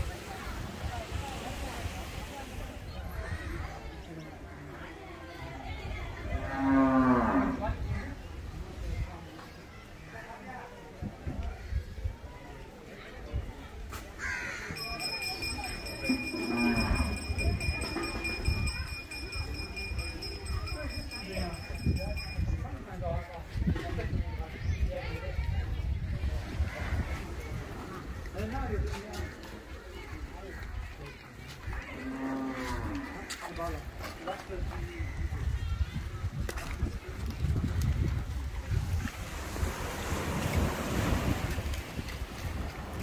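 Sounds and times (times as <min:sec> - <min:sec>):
crow cawing: 0:14.2 - 0:14.8.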